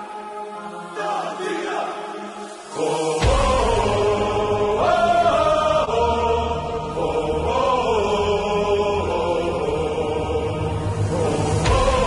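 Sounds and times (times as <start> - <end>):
crowd chanting in unison: 0.0 - 12.0.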